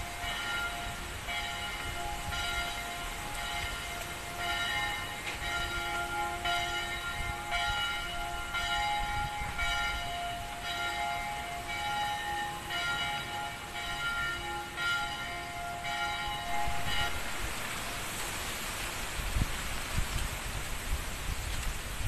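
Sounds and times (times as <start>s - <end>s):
ringing bell-like tones: 0.0s - 18.0s.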